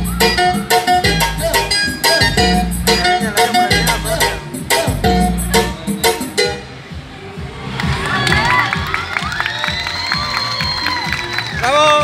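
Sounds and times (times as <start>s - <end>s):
crowd cheering and shouting: 0.0s - 0.9s, 7.3s - 12.0s
dance music with heavy bass: 0.0s - 12.0s.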